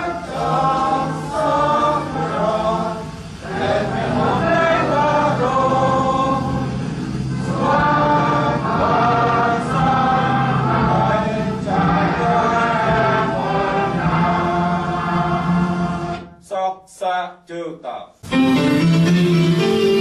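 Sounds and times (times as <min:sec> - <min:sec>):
group singing slow song: 0:00.0 - 0:16.4.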